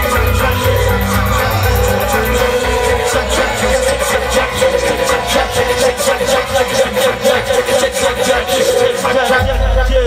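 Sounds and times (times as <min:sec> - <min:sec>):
synthesizer keyboards: 0:00.0 - 0:09.8.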